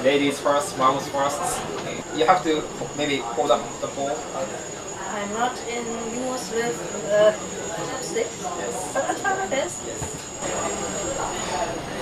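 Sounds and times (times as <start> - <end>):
indistinct voices: 0.0 - 12.0
restaurant background hum: 0.0 - 12.0.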